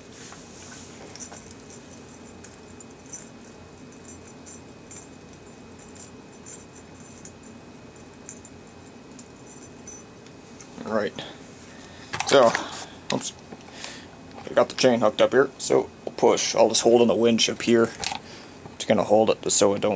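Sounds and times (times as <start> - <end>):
low room hum: 0.0 - 19.9
metallic clinks of chain and hook: 1.1 - 10.1.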